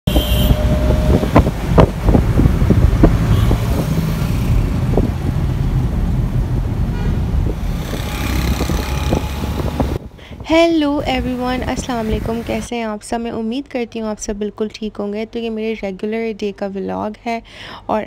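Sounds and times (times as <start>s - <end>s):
car horn: 0.0s - 1.3s, 3.2s - 3.8s, 6.9s - 7.3s
car engine rumble and road noise: 0.1s - 12.8s.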